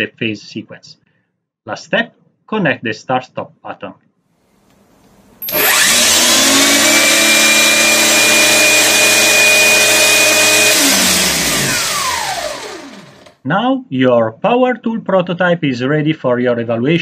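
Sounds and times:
grinder motor whining: 5.4s - 13.4s.

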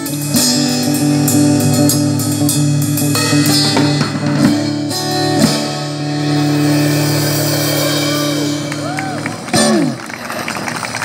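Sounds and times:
cymbal wash: 5.8s - 9.2s.

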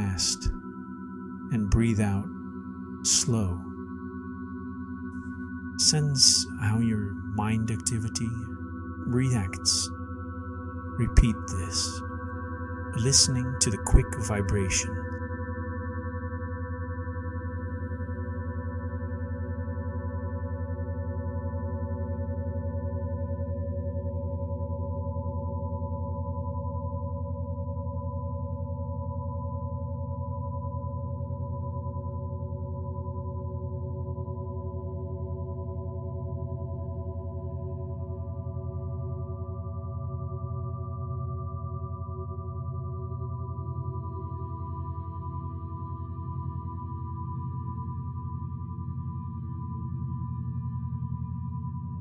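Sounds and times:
low pulsing drone tone: 0.0s - 52.0s.

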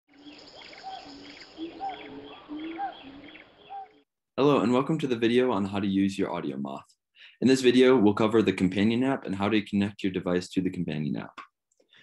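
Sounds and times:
birds whistling: 0.1s - 4.0s.

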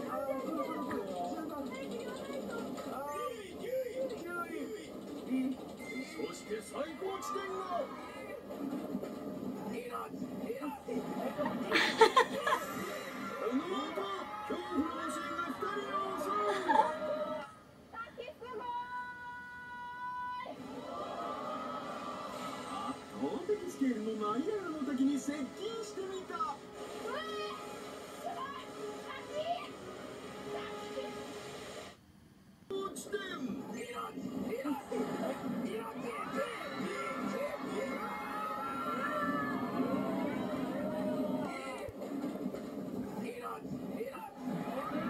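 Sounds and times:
faint music: 0.0s - 45.0s
television soundtrack: 0.0s - 45.0s
people calling out over tv: 13.5s - 20.6s
background music: 20.6s - 32.0s, 33.6s - 43.2s.

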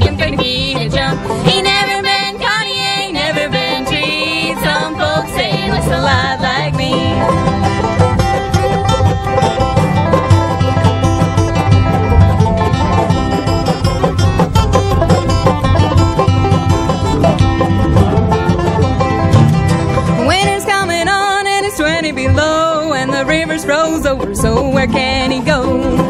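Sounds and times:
banjo picking: 0.0s - 26.0s
bluegrass band playing: 0.0s - 26.0s
person singing: 20.2s - 26.0s.

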